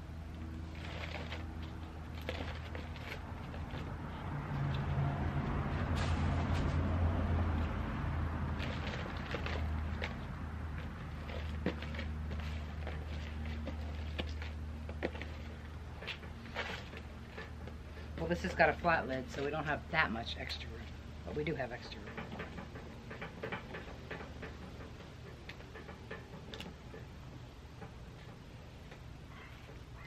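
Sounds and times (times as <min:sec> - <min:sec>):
plastic pots and soil crackling: 0:00.0 - 0:22.5.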